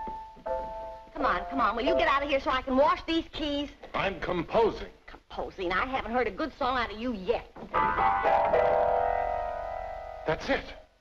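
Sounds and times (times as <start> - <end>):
grand piano chords: 0.0 - 2.8, 7.8 - 10.8.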